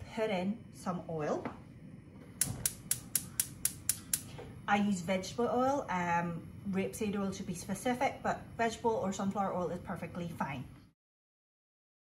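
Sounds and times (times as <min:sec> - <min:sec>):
gas hob igniter clicking: 0:02.4 - 0:04.4.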